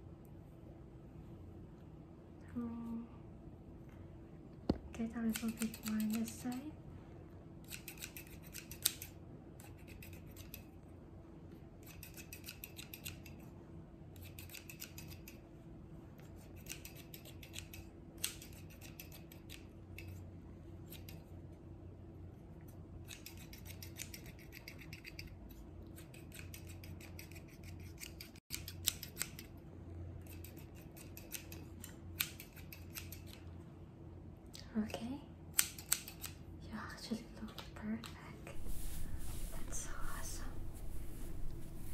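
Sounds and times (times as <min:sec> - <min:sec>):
steady low hum: 0:00.0 - 0:41.9
scissors snipping: 0:05.1 - 0:06.6, 0:07.6 - 0:10.7, 0:11.8 - 0:13.4, 0:14.2 - 0:15.4, 0:16.3 - 0:20.2, 0:23.0 - 0:29.6, 0:30.2 - 0:33.4, 0:35.5 - 0:36.4.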